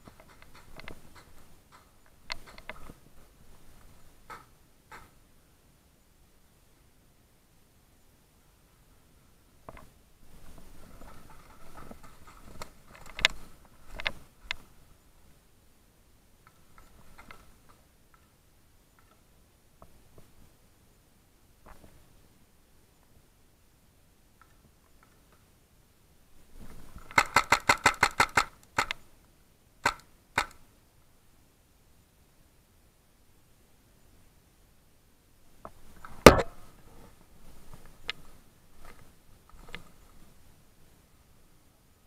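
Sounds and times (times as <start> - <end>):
rustle of movement: 8.5 - 29.4, 35.3 - 42.0
sharp snaps: 27.0 - 29.0, 29.8 - 30.6
paintball marker firing: 27.1 - 29.0, 29.8 - 30.6, 36.2 - 36.6.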